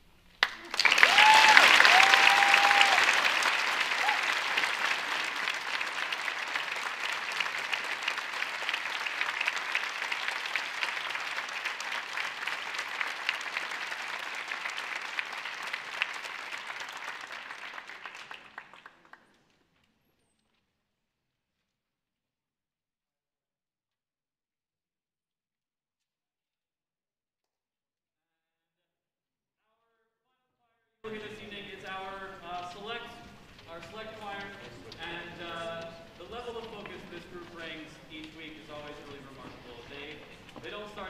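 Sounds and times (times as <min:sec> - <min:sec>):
audience applause: 0:00.4 - 0:19.5
brief cheers: 0:00.6 - 0:04.6.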